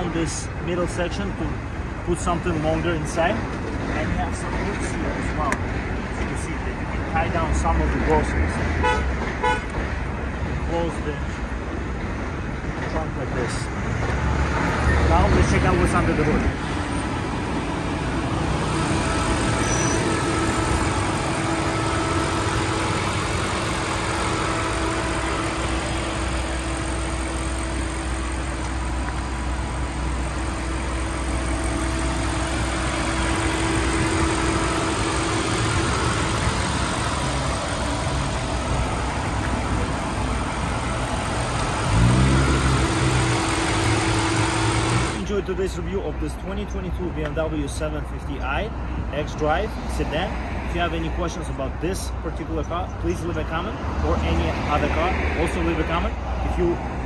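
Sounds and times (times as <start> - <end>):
car engine running: 15.2 - 45.3
loud rising-pitch sound: 16.6 - 45.2.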